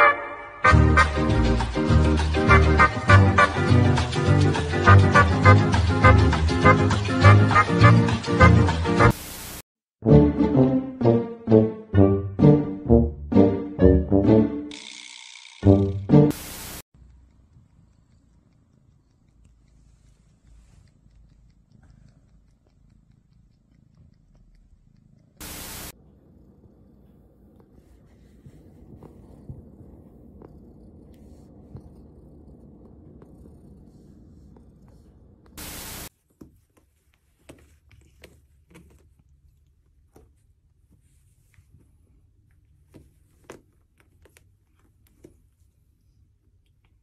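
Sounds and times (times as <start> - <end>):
cat purring: 17.0 - 35.6
low room hum: 17.0 - 47.0.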